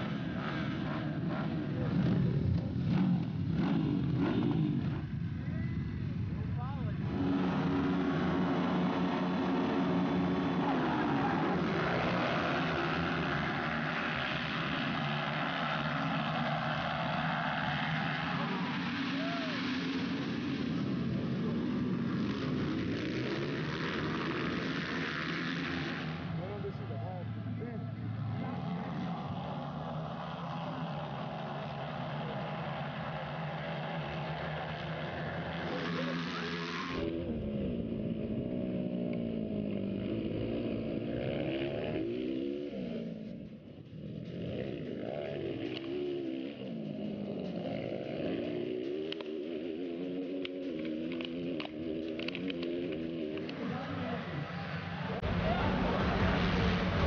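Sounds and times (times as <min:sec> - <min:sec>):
dirt bike engines revving: 0:00.0 - 0:57.0
dirt bikes accelerating away: 0:00.0 - 0:57.0.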